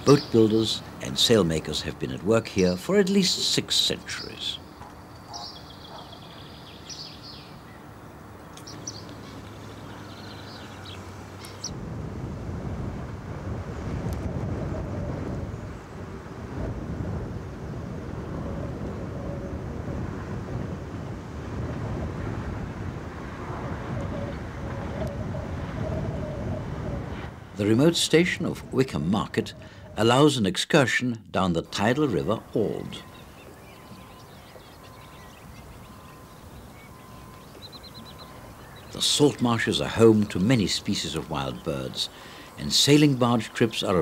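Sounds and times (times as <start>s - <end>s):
high bird calls: 0.0s - 1.9s, 3.3s - 11.8s, 31.7s - 44.0s
wind rumble on microphone: 8.5s - 30.0s, 31.8s - 42.1s
distant diesel railcar running: 31.7s - 44.0s.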